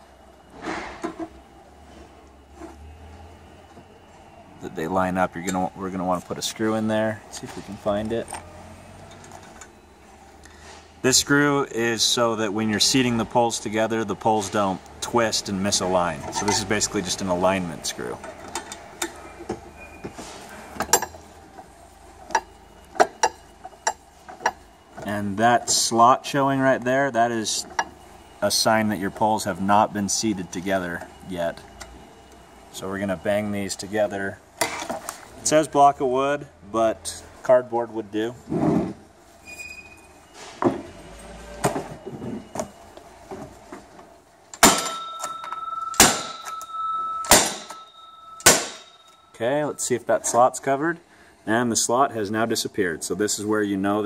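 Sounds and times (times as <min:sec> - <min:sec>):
metal pole banging on cardboard: 0:44.6 - 0:45.3, 0:47.3 - 0:47.8, 0:48.4 - 0:49.0
ringing metal tube: 0:44.6 - 0:49.9.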